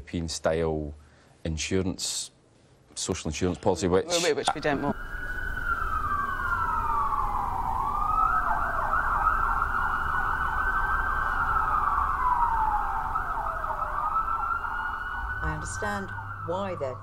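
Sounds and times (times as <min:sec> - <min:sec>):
emergency sirens wailing: 0:04.5 - 0:17.0.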